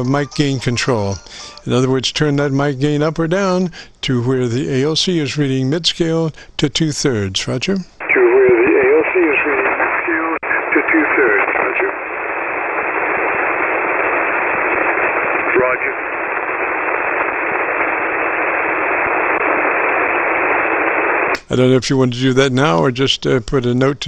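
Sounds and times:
radio band noise hiss: 0:00.0 - 0:21.7
weak garbled radio voice: 0:08.0 - 0:12.0, 0:15.4 - 0:16.0.

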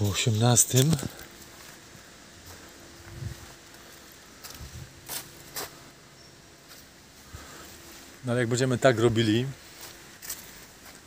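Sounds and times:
footsteps on leafy dirt path: 0:00.0 - 0:11.0.

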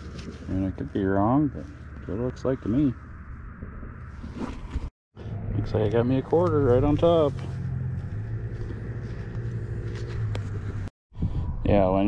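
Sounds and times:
engine running: 0:00.0 - 0:10.9.

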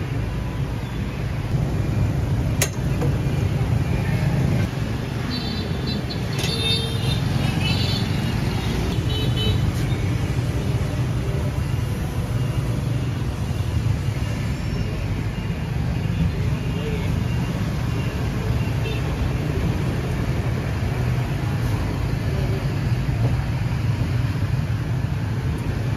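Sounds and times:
street traffic rumble: 0:00.0 - 0:25.9.

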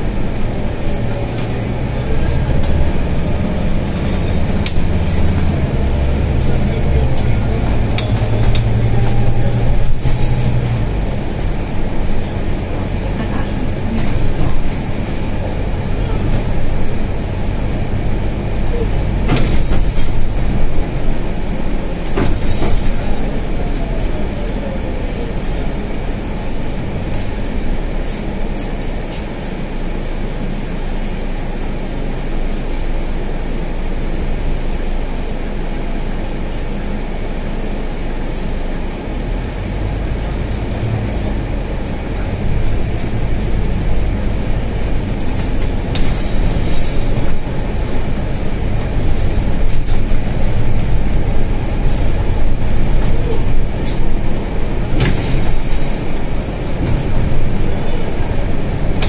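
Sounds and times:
bus diesel engine: 0:00.0 - 0:59.0
road rumble: 0:00.0 - 0:59.0.

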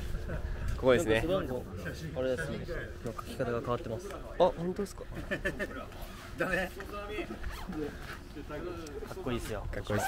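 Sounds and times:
man laughing: 0:05.1 - 0:05.9
jacket zipper: 0:07.4 - 0:07.8.

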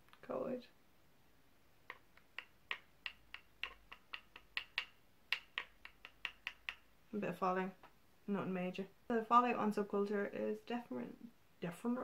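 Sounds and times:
brush tapping clicks: 0:01.8 - 0:06.9.

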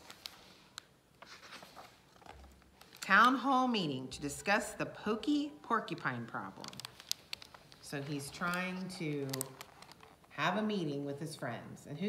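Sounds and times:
paper pages rustling: 0:00.0 - 0:03.5, 0:05.9 - 0:10.5.

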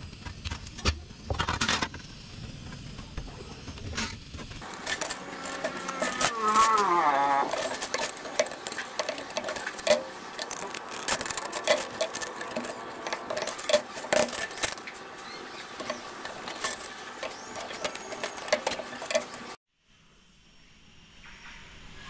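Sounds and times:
metallic rustle: 0:04.0 - 0:19.6
metal snips snipping sheet metal: 0:04.6 - 0:19.6.

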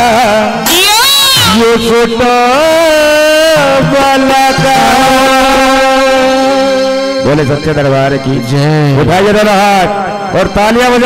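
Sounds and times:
keyboard holding a chord: 0:01.5 - 0:11.0.

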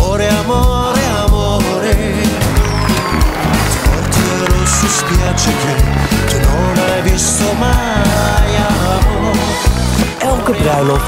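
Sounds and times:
upbeat music with driving beat: 0:00.0 - 0:11.0.

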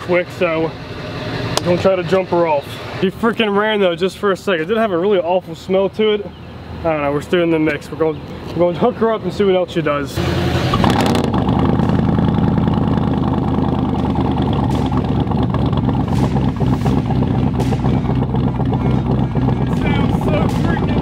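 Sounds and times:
car engine idling: 0:10.8 - 0:21.0.

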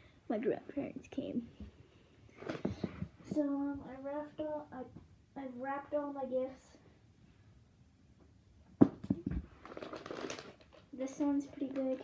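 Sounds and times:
wrapping paper rustling: 0:09.6 - 0:12.0.

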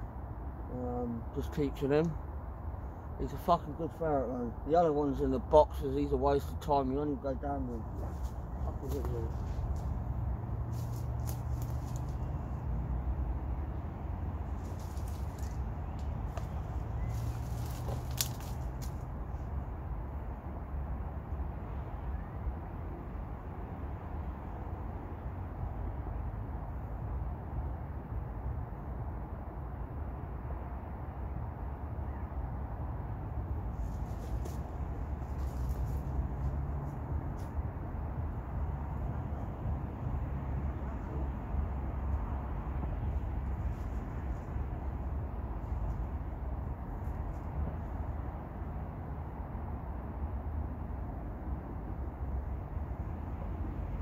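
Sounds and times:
low outdoor rumble: 0:00.0 - 0:29.7, 0:31.8 - 0:54.0
footsteps in dry leaves: 0:10.6 - 0:12.3, 0:14.5 - 0:19.0, 0:33.8 - 0:37.5
small crackles and clicks: 0:17.2 - 0:19.0.

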